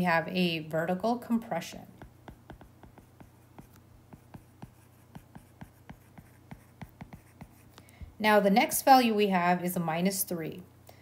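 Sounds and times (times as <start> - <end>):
low steady hum: 0.0 - 11.0
stylus tapping on tablet screen: 1.7 - 8.2.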